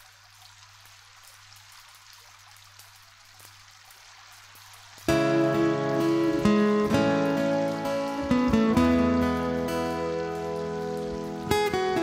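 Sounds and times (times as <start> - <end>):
vinyl crackles and pops: 4.6 - 12.0
vinyl hiss: 4.6 - 12.0.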